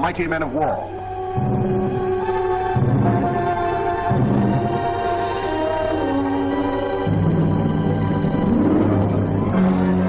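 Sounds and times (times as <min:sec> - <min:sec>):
orchestral low chords: 0:00.0 - 0:10.0.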